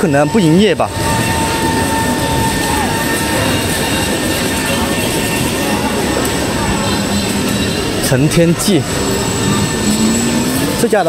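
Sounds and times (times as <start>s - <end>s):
crowd noise: 0.0s - 11.0s
passing scooters and cars: 0.0s - 11.0s.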